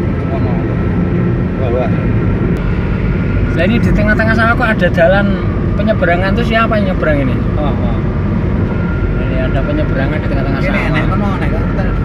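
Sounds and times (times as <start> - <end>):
car engine and tyre rumble: 0.0 - 12.0.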